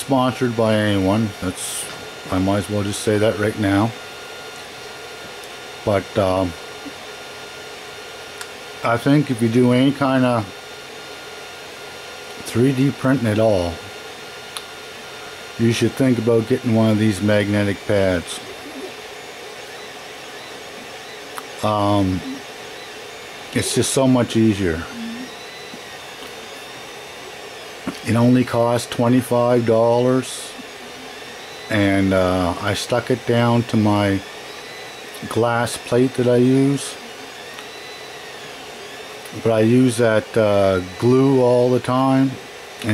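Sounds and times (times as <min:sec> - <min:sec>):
faint steady whine: 0:00.0 - 0:42.9
fan whir: 0:00.0 - 0:42.9
printer mechanical hum: 0:00.0 - 0:42.9.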